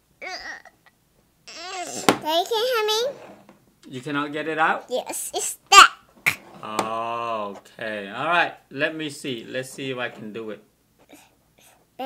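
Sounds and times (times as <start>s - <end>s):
young girl speaking: 1.5s - 3.2s, 4.9s - 6.0s.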